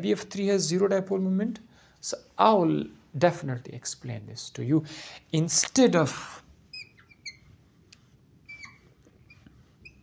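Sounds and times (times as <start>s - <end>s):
marker squeaking on whiteboard: 6.6s - 10.0s.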